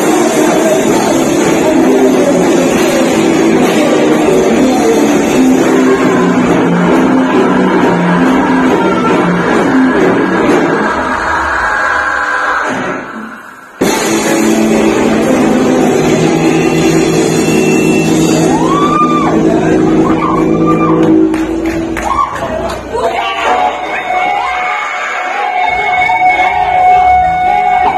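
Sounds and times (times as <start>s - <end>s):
live heavy metal band: 0.0s - 11.4s, 13.8s - 21.2s.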